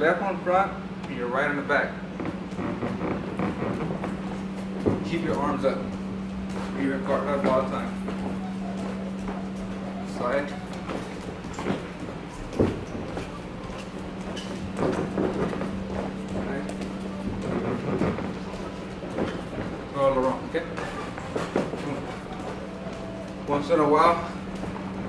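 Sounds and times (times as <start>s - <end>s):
steady hum: 0.0s - 25.0s
footsteps on padded canvas: 2.1s - 25.0s.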